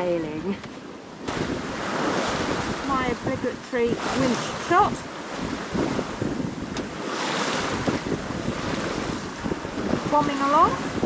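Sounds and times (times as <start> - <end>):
water rushing along a hull: 0.0 - 11.0
wind buffeting microphone: 0.0 - 11.0.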